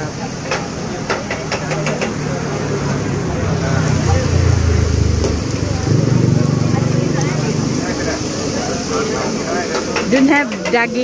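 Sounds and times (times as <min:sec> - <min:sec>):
background chatter: 0:00.0 - 0:11.0
vehicle engine rumbling: 0:00.0 - 0:11.0.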